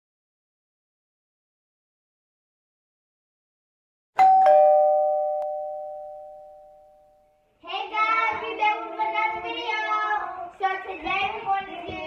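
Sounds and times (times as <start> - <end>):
doorbell chime: 4.2 - 7.4
children's voices: 7.6 - 12.0.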